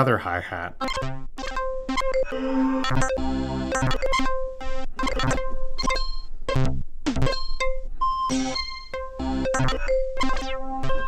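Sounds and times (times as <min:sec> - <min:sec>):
synth notes and chords: 0:00.8 - 0:11.0.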